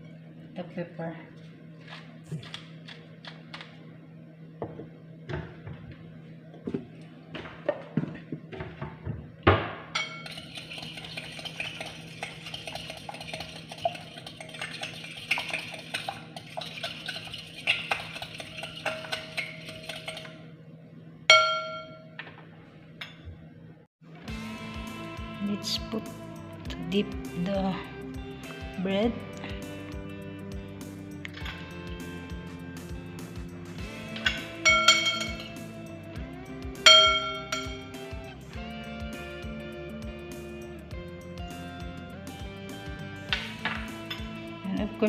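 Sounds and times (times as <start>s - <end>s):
fork clinking against glass bowl: 34.3s - 35.6s, 36.9s - 38.0s.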